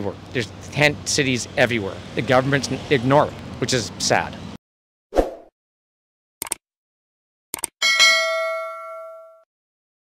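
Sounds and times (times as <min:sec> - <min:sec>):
bright bell chime: 0:07.8 - 0:09.5.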